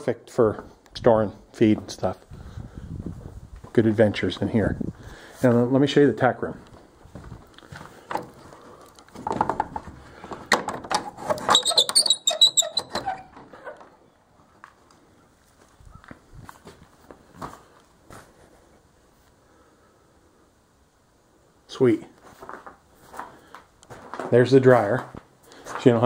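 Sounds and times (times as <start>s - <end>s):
door squeaking: 10.8s - 14.2s.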